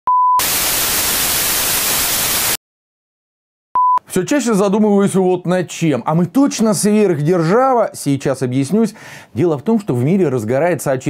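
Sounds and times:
test-signal beep: 0.1 - 0.5, 3.8 - 4.0
white-noise static: 0.4 - 2.6.

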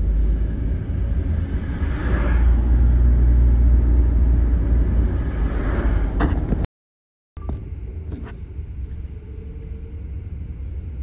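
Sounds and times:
car cabin road rumble: 0.0 - 6.7
faint steady hum: 7.4 - 11.0.

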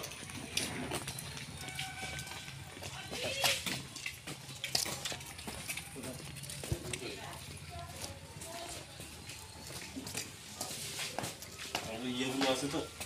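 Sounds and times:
footsteps on hard ground: 0.0 - 13.0.

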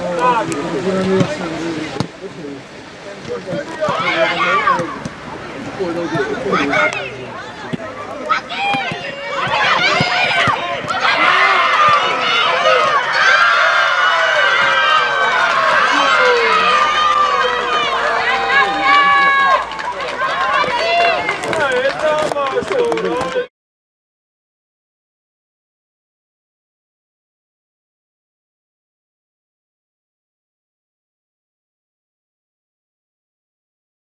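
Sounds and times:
children shouting and cheering: 3.8 - 5.0, 6.1 - 22.5.

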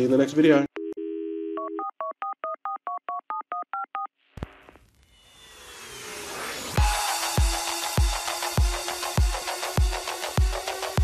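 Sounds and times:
telephone dial tone: 0.8 - 4.1
touch-tone keypad beeps: 0.8 - 4.1.

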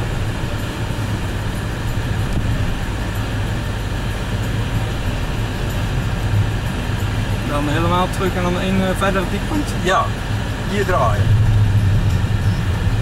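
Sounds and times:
car interior engine and tyre hum: 0.0 - 13.0.

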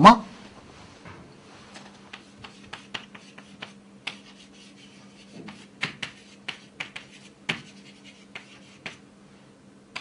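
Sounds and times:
chalk scratching on chalkboard: 2.1 - 9.0.

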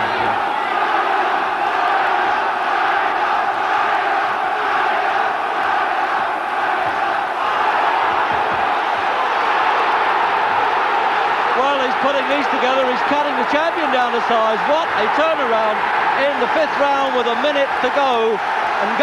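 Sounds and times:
crowd cheering and shouting: 0.0 - 19.0
commentator speaking: 11.5 - 19.0.

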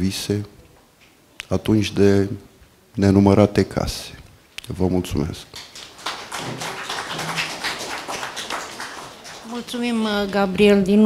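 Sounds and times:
audience applauding: 5.5 - 10.5.

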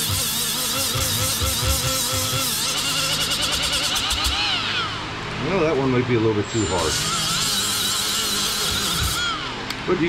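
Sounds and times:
rotary tool motor whine: 0.0 - 5.2, 6.4 - 9.8
abrasive disc scrubbing: 6.5 - 9.6.

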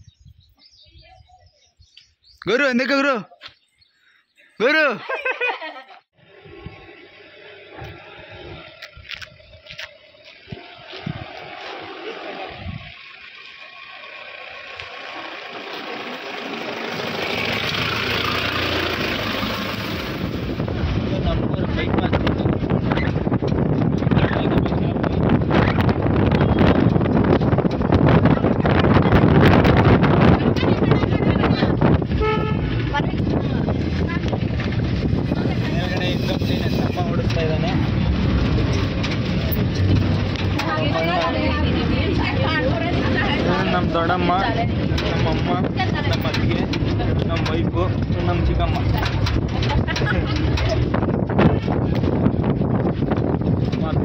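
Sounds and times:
wind buffeting microphone: 0.0 - 2.4, 6.2 - 14.9, 17.0 - 54.0
women talking: 0.8 - 1.7, 30.2 - 31.9, 32.9 - 34.4, 40.5 - 43.8, 45.7 - 46.4, 48.9 - 50.8
vehicle road noise: 6.1 - 54.0.

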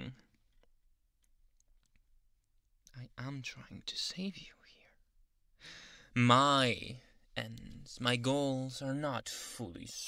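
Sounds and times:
man's voice: 6.2 - 10.0.

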